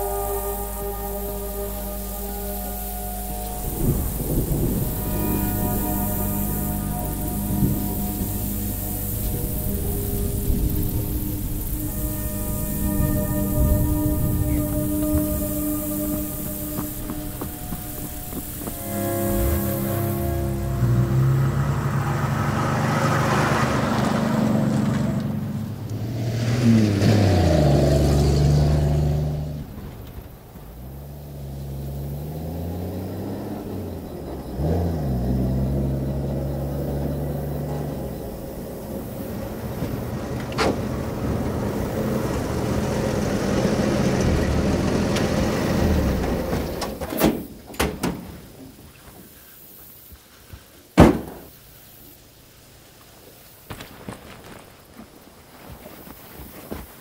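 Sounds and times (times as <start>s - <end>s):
pickup truck engine running: 0.0s - 26.0s, 26.9s - 47.0s.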